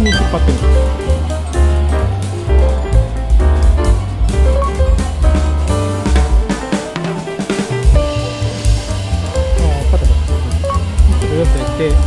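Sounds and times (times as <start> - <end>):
background music with drums and bass: 0.0 - 12.0.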